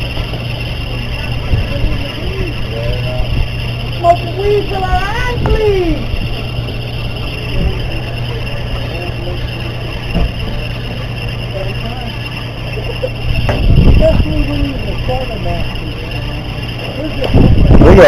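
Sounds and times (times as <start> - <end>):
boat engine humming: 0.0 - 18.0
muffled voices: 0.0 - 18.0.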